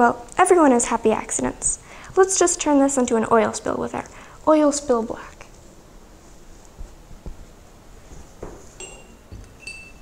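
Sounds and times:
soft knock: 8.4s - 8.7s
high bell-like chimes: 8.8s - 10.0s.

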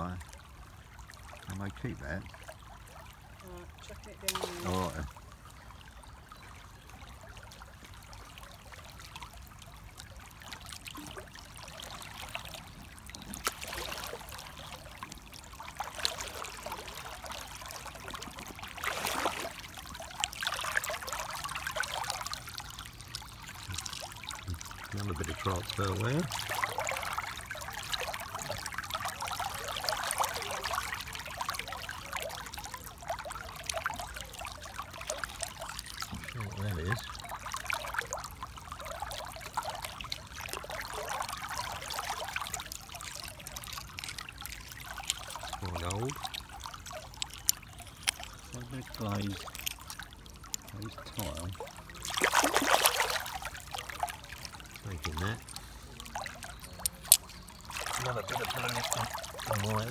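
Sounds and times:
river water trickling: 0.0s - 59.9s
water splash: 1.2s - 5.2s, 7.3s - 59.9s
hands rummaging in stream bed: 12.0s - 31.0s, 40.2s - 59.9s.

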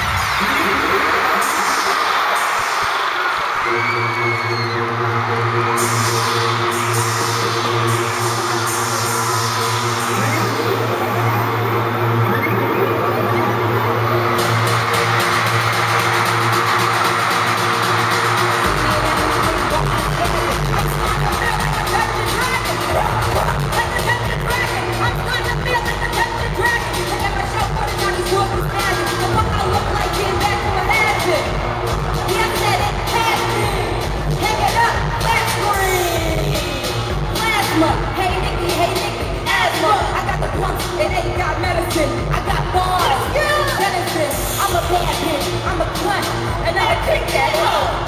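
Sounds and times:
heavy bass beat: 0.0s - 48.0s
synth chords: 0.0s - 48.0s.

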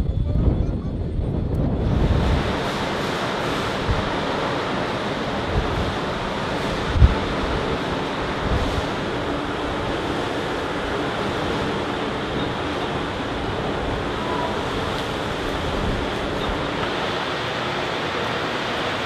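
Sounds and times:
wind rushing: 0.0s - 18.6s
wind buffeting microphone: 0.0s - 19.0s
sea wash around ship: 1.1s - 19.0s.

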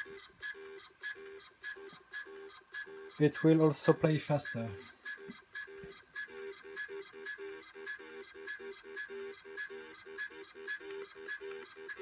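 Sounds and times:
disk drive head ticking: 0.0s - 12.0s
square-wave beeping tune: 0.0s - 12.0s.

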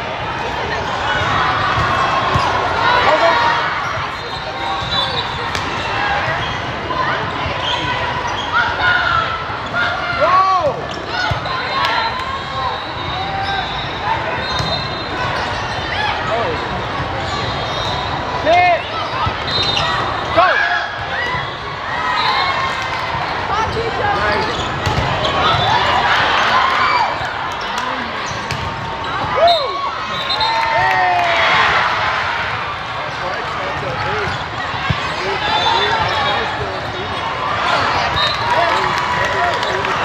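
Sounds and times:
din of many voices: 0.0s - 40.0s
sneaker squeaks on court: 12.8s - 15.9s.

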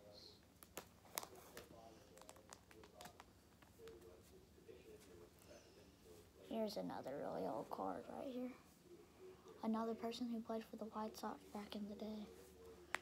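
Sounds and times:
plastic sleeves crinkling: 0.6s - 4.1s.

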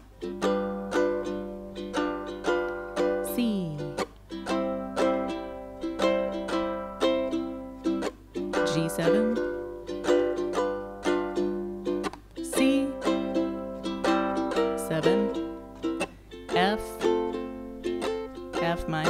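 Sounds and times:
ukulele strumming: 0.0s - 19.0s.

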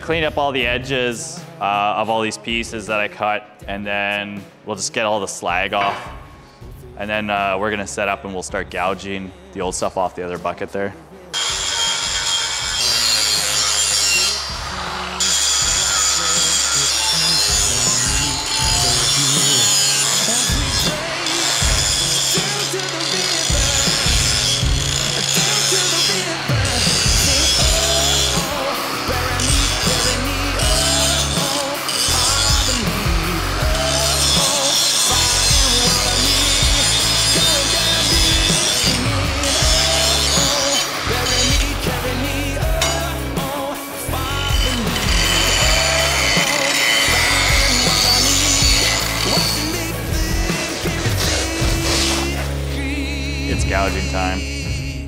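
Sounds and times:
rock music: 0.0s - 55.0s
angle grinder grinding steel: 11.4s - 52.8s.

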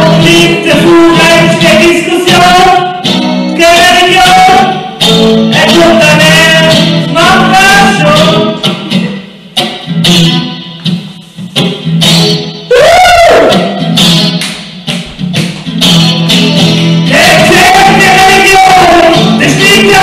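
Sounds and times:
man singing into microphone: 0.0s - 9.1s, 17.1s - 20.0s
strummed guitars: 0.0s - 20.0s.

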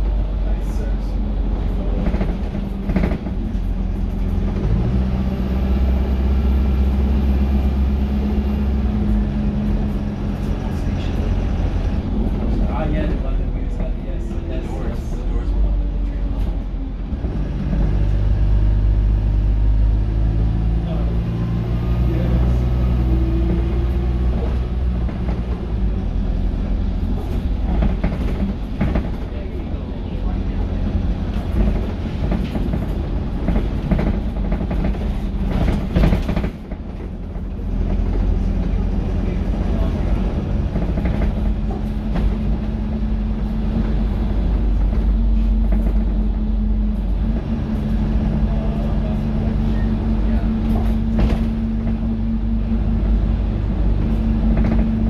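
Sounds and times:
bus body rattling: 0.0s - 55.0s
bus diesel engine running: 0.0s - 55.0s.

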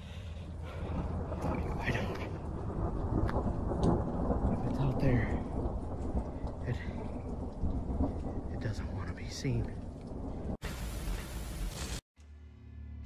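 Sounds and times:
thunder rumbling: 0.0s - 11.8s
steady rain: 0.0s - 12.0s
sharp crackles: 0.1s - 12.0s.

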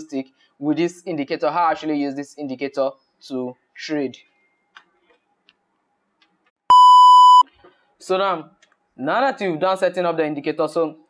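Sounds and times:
test pattern beep: 6.7s - 7.4s.

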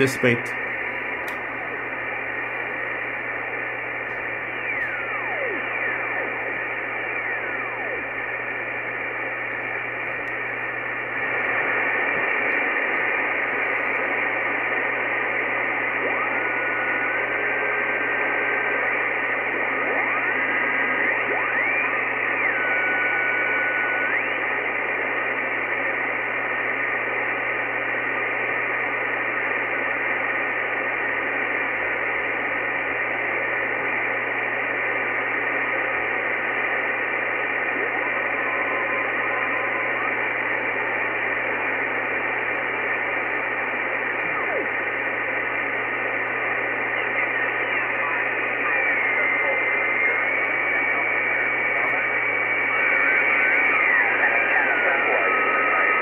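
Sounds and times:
radio receiver hiss: 0.0s - 56.0s.

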